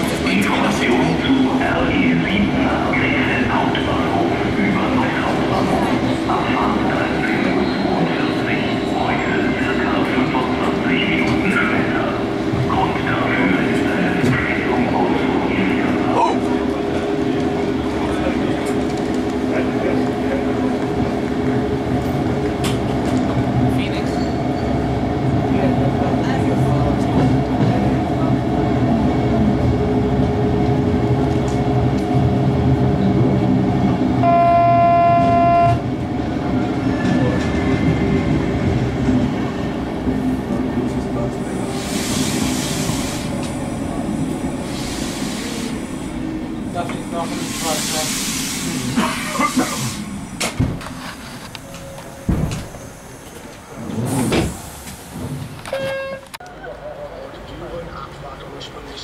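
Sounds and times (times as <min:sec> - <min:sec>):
train rolling noise: 0:00.0 - 0:59.0
train horn blast: 0:34.2 - 0:35.8, 0:55.7 - 0:56.3.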